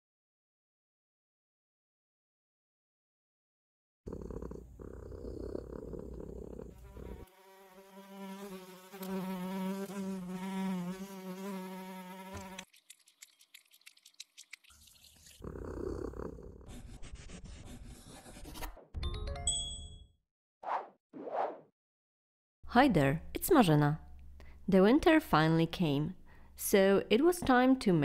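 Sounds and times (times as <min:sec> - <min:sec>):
cartoon fly buzzing: 0:06.7 - 0:12.7.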